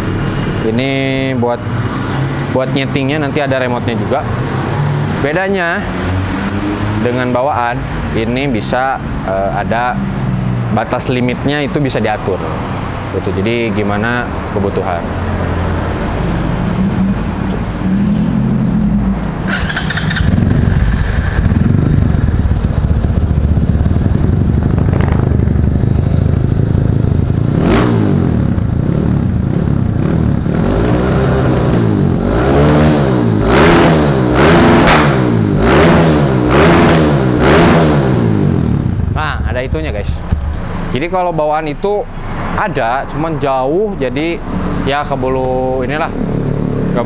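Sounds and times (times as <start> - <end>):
motorcycle engine idling and revving: 0.0 - 47.0.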